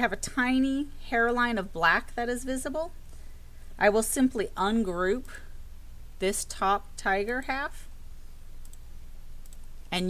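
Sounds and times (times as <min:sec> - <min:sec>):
low electrical hum: 0:00.0 - 0:10.0
computer mouse clicks: 0:08.6 - 0:10.0.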